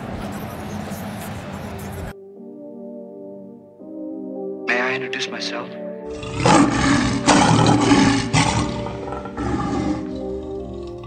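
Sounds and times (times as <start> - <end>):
faint music: 0.0 - 11.0
lion roar: 6.1 - 11.0.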